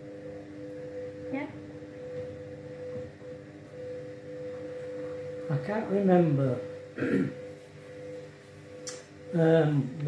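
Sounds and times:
washing machine humming: 0.0 - 10.0.

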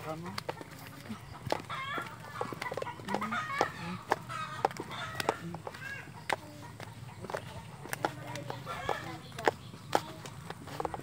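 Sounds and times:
birds calling: 0.0 - 11.0
footsteps on dirt and stone: 0.0 - 11.0.

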